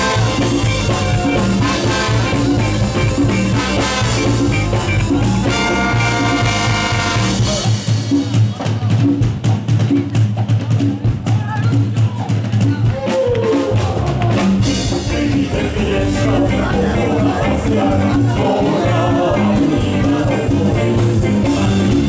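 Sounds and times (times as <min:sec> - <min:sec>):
drum break: 0:00.0 - 0:22.0
ska band with brass: 0:00.0 - 0:22.0.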